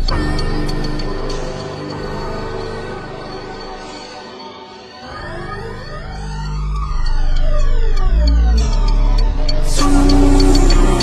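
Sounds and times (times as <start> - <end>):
sweeping synth tones: 0.0 - 11.0
deep bass note: 5.2 - 11.0.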